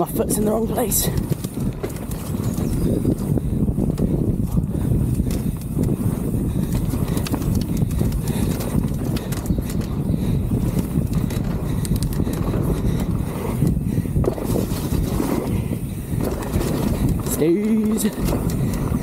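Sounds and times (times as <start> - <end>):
bike rattling over bumps: 0.0 - 19.0
wind and tyre noise: 0.0 - 19.0.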